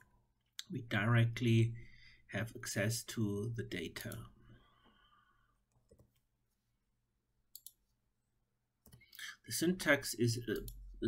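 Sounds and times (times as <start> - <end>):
keyboard and mouse clicks: 5.7 - 6.2, 7.5 - 7.8.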